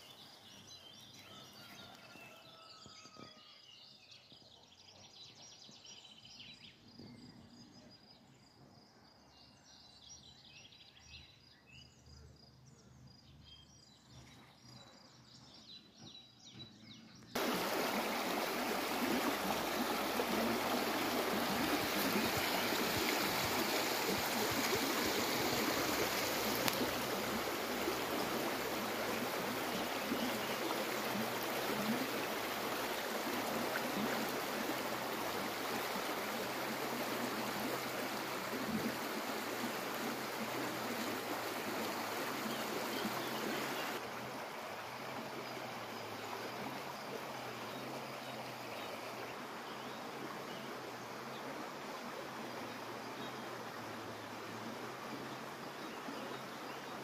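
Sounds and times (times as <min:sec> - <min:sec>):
water rushing: 0:17.4 - 0:57.0.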